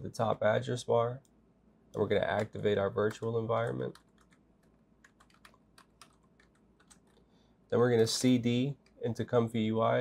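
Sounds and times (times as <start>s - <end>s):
faint keyboard typing: 1.2s - 7.3s, 8.0s - 9.4s.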